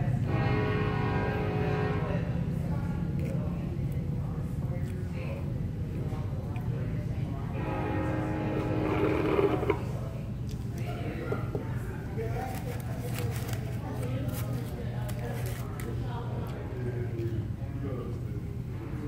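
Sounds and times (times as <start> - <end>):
indistinct chatter of diners: 0.0 - 19.0
steady low hum: 0.0 - 19.0.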